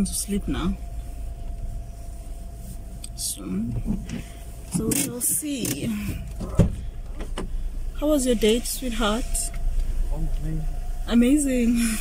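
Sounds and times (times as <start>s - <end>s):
low steady rumble: 0.0s - 12.0s
heavy thump inside car: 3.6s - 7.7s.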